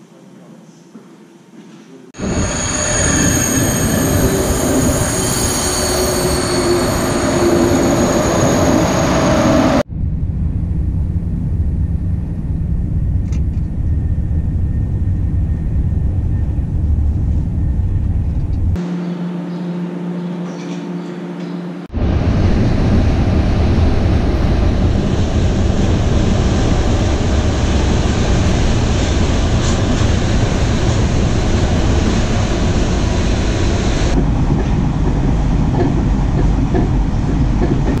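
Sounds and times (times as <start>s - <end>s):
train wheels screeching: 2.2s - 9.8s
train rumble inside carriage: 2.2s - 18.8s, 21.9s - 38.0s.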